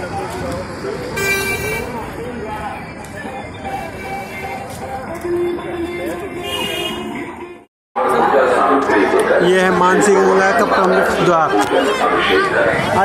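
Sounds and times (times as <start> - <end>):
people's voices: 0.0 - 13.0
street noise: 0.0 - 13.0
vehicle horn tooting: 1.2 - 2.0, 3.7 - 4.7, 6.4 - 7.2.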